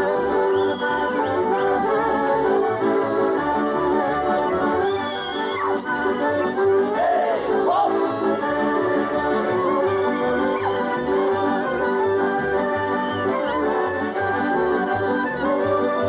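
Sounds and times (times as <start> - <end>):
accordion folk dance music: 0.0 - 16.0.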